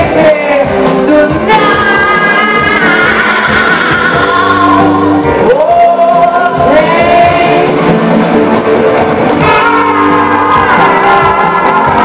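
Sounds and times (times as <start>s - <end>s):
woman singing: 0.0s - 7.8s
drums: 0.0s - 12.0s
electric guitars: 0.0s - 12.0s.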